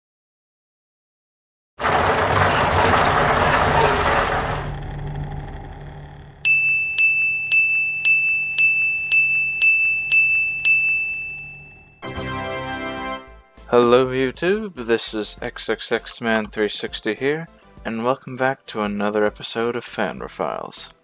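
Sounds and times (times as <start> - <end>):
loud burst of noise: 1.8 - 6.4
high clear dings: 6.4 - 12.0.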